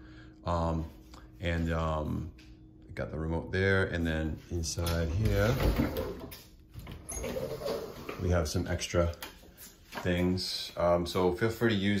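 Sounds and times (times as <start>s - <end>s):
closet door rattling and sliding: 5.1s - 8.3s.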